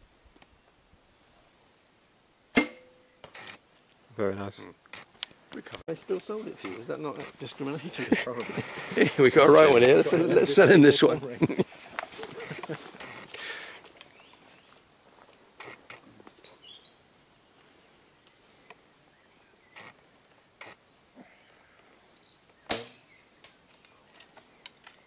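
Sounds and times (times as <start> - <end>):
birds chirping: 5.5 - 14.9, 15.5 - 25.0
bowstring snapping: 22.6 - 23.9
faint clicks of arrow drawn: 22.6 - 25.0.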